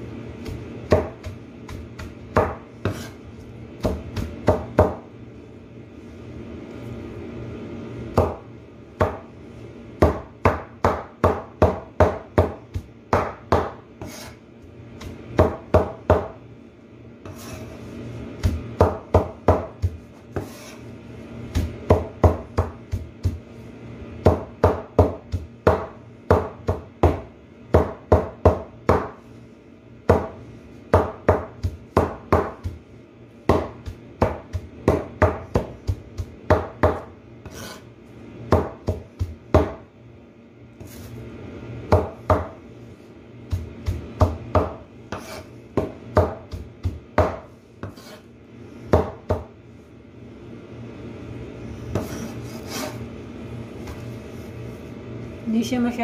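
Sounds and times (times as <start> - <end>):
cleaver chopping leaves on board: 0.4 - 3.1, 3.8 - 5.0, 10.0 - 14.3, 24.2 - 29.2, 30.1 - 32.8, 33.5 - 37.8, 43.5 - 48.2.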